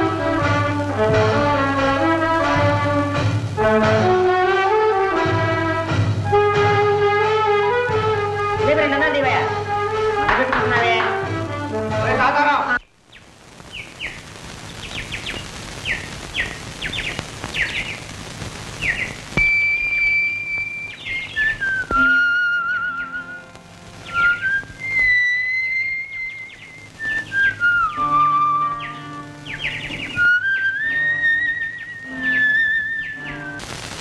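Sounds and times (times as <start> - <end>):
soft instrumental accompaniment: 0.0 - 12.8, 21.7 - 25.9, 26.8 - 33.6
steady hiss: 0.0 - 34.0
bird-call chirps: 12.8 - 18.1, 18.8 - 33.6
high whistled melody: 18.8 - 33.6.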